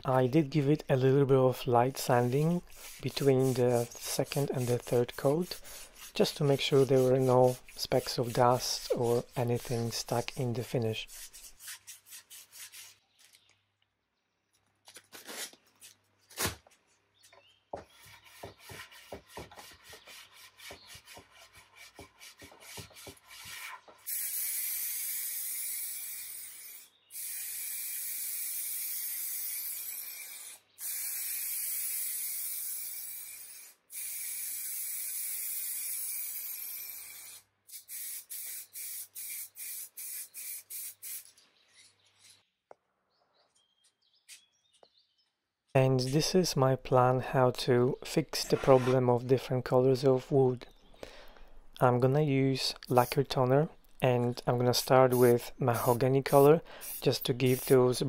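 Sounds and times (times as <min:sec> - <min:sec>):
hand sanding strokes: 0:01.8 - 0:13.0, 0:17.9 - 0:24.1
spray hiss: 0:24.1 - 0:41.3, 0:55.1 - 0:57.8.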